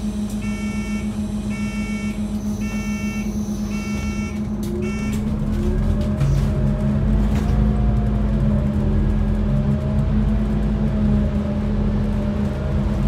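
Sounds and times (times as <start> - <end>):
bus whine pulling away: 0.0 - 13.0
diesel bus engine idling: 0.0 - 13.0
door warning beeper: 0.4 - 5.4.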